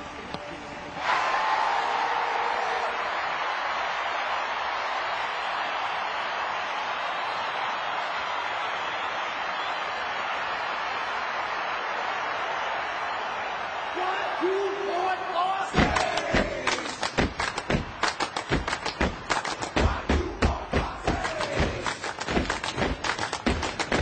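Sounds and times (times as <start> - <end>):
audience cheering and applauding: 1.0 - 24.0.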